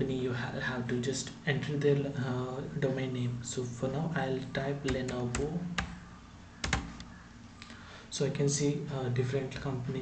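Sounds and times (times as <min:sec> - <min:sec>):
keyboard key clicks: 0:06.6 - 0:07.1.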